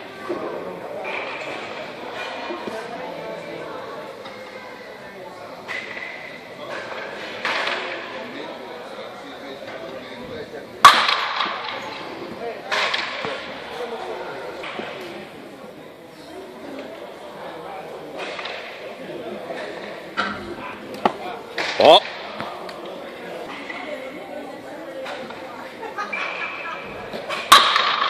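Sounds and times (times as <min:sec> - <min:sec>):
baseball crack echoing in hall: 0:00.0 - 0:04.6, 0:05.2 - 0:28.0
faint voices: 0:00.0 - 0:28.0.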